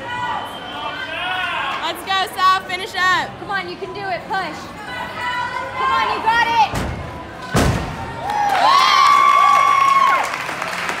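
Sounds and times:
people shouting and cheering: 0:00.0 - 0:02.1, 0:04.9 - 0:10.5.

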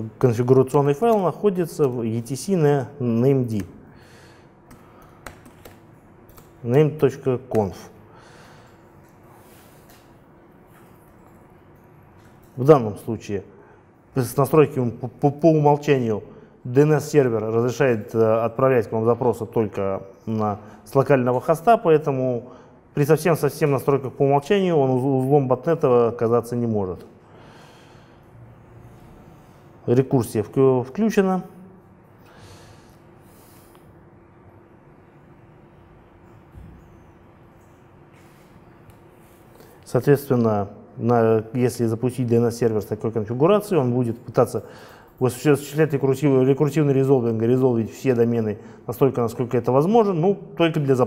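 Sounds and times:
faint steady hum: 0:00.0 - 0:51.0
soft breath through nose: 0:32.2 - 0:34.0.

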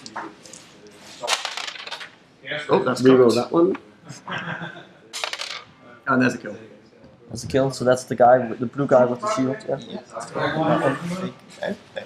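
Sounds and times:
plastic dice clattering on board: 0:01.3 - 0:02.2, 0:05.2 - 0:05.7.

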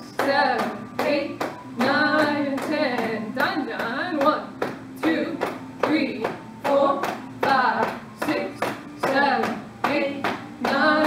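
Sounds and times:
woman counting aloud: 0:00.0 - 0:11.0.

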